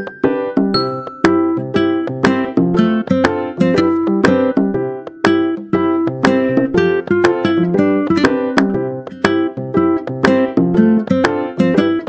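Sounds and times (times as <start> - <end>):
plucked string instrument music: 0.0 - 12.0.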